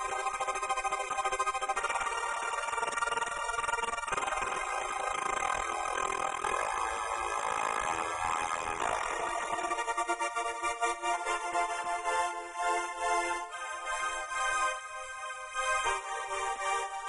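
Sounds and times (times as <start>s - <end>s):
pulsing synthesizer pad chords: 0.0s - 17.0s.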